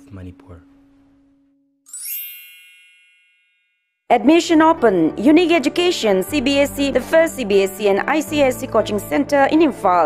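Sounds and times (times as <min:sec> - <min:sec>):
bright chime ding: 0:01.9 - 0:03.9.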